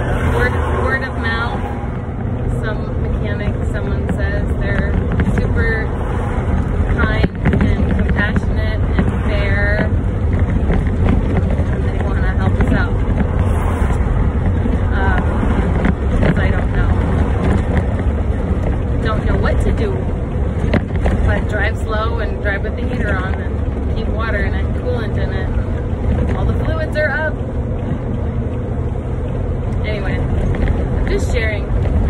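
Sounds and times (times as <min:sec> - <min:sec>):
engine rumble: 0:00.0 - 0:32.0
road noise: 0:00.0 - 0:32.0.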